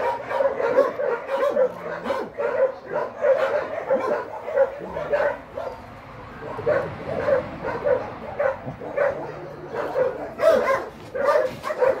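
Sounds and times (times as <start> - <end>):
dog barking: 0.0 - 12.0.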